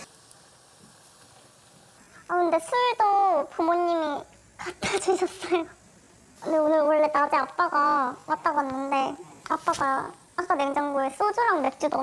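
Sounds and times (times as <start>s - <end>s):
food hissing in a pot: 0.0s - 12.0s.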